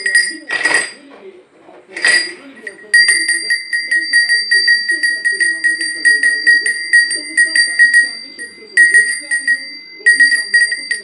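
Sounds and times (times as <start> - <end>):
hand bell ringing: 0.0 - 1.0, 2.0 - 11.0.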